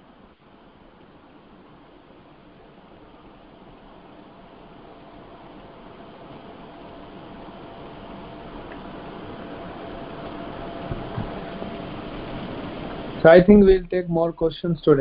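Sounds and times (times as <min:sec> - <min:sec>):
open microphone hiss: 0:00.0 - 0:15.0.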